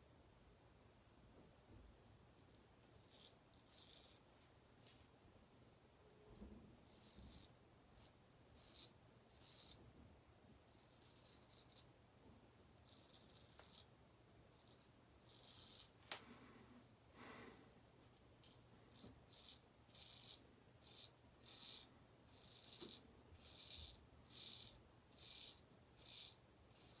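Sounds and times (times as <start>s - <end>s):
razor scraping stubble: 3.0s - 4.3s, 6.8s - 9.8s, 10.7s - 11.9s, 12.8s - 13.9s, 18.4s - 27.0s.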